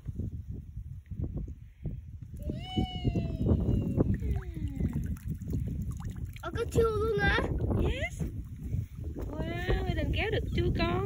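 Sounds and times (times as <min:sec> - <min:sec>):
water sloshing and splashing: 0:03.9 - 0:10.2.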